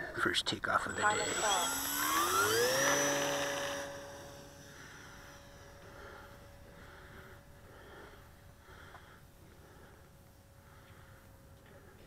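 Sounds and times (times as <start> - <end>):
model plane motor whining: 0.8 - 9.3.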